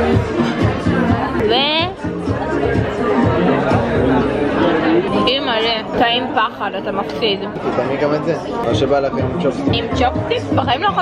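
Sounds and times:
pop song with singing: 0.0 - 7.2, 8.6 - 11.0
diners chatting: 0.0 - 11.0.

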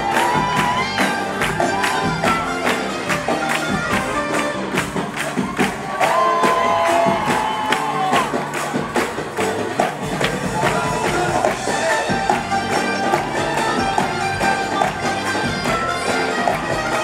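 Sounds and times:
concert crowd: 0.0 - 17.0
live pop band playing: 0.0 - 17.0
percussion beating: 0.0 - 17.0.

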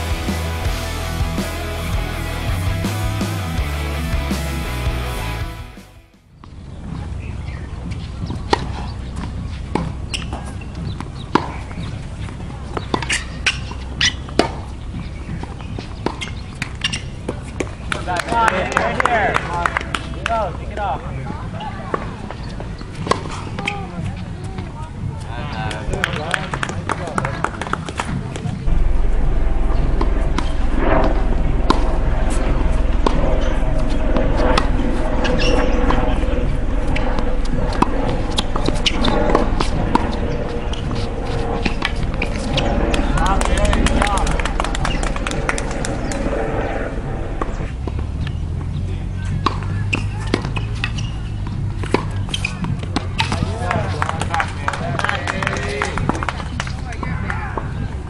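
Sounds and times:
steady low rumble: 0.0 - 58.0
tennis balls struck by rackets: 7.8 - 18.6, 47.4 - 58.0
tennis balls bouncing on court: 7.8 - 28.6, 37.7 - 40.1, 47.4 - 58.0.

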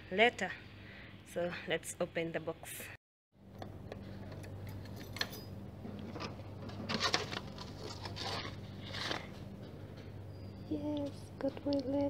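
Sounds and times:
low hum: 3.4 - 12.0
keys jangling in lock: 4.6 - 5.6.

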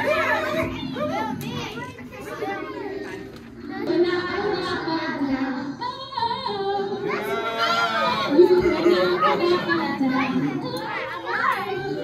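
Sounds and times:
children cheering: 7.0 - 9.7.

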